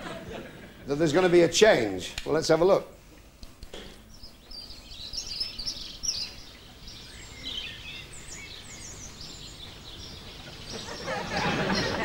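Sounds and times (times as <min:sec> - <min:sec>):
faint steady hiss: 0:00.0 - 0:12.0
small birds chirping: 0:03.2 - 0:12.0.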